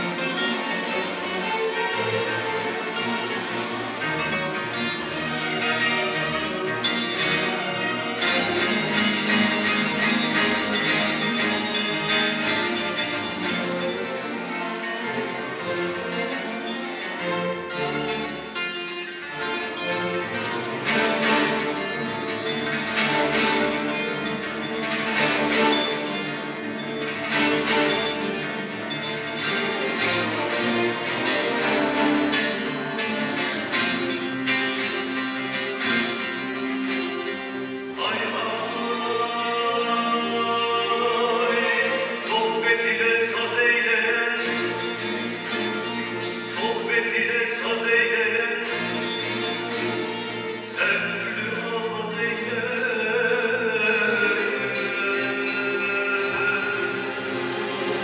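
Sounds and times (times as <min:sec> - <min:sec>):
fast plucked lute strokes: 0:00.0 - 0:58.0
folk music by string orchestra: 0:00.0 - 0:58.0.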